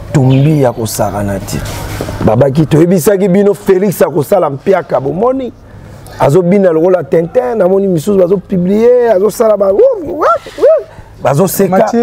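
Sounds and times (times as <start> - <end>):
man speaking: 0.0 - 12.0
man making vocal swoops: 10.0 - 11.0.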